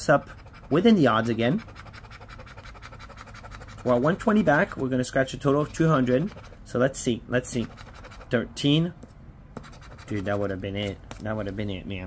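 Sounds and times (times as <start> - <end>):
scratching lottery ticket: 0.0 - 8.5, 9.6 - 11.7.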